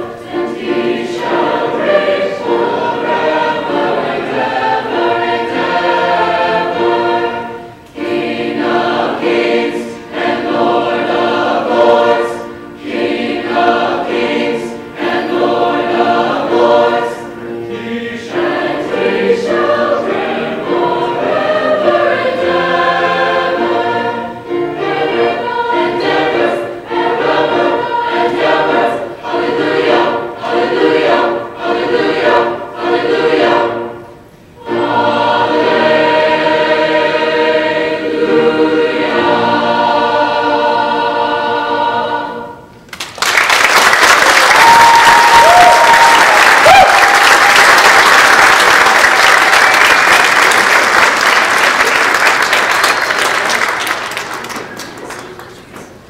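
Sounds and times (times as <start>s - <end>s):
chorus singing: 0.0s - 42.8s, 43.5s - 55.4s.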